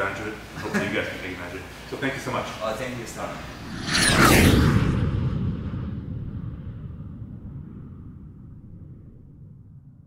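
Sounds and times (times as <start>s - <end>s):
low rumbling whoosh and boom: 3.0s - 10.0s.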